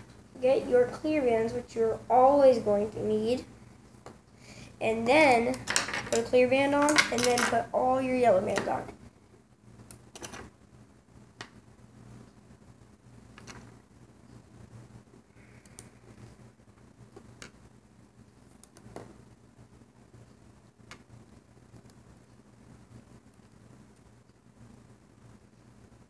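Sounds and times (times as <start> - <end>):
low steady hum: 0.0 - 26.0.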